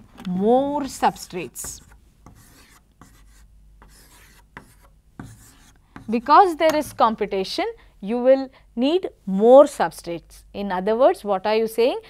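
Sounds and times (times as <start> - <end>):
chalk scratching on chalkboard: 0.8 - 7.0
chalk tapping on board: 0.8 - 7.0.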